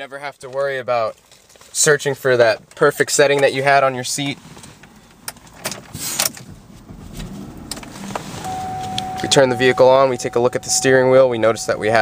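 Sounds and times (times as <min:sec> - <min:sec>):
car engine starting and idling: 0:02.4 - 0:12.0
key clicking in ignition: 0:07.7 - 0:12.0.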